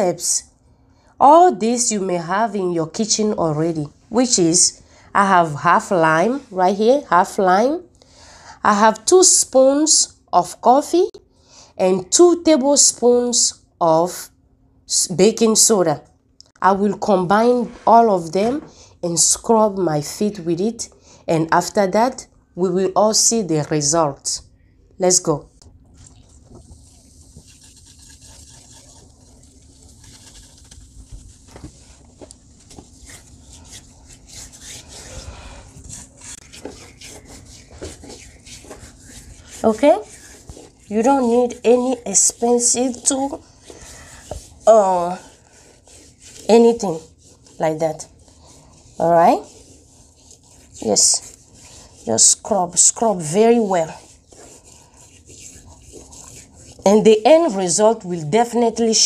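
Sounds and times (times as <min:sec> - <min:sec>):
hands scrubbing feet with grit: 0:26.1 - 0:57.8.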